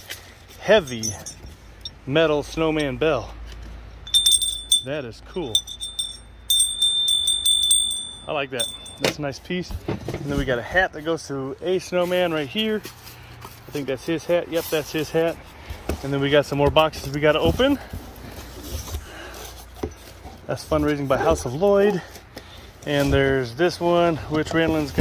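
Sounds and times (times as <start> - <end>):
metal handbell ringing: 0.8 - 2.0, 4.0 - 9.1.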